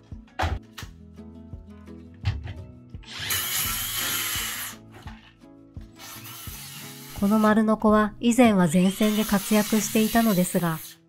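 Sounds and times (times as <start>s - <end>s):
circular saw cutting wood: 3.1s - 4.8s, 6.0s - 7.6s, 8.8s - 11.0s.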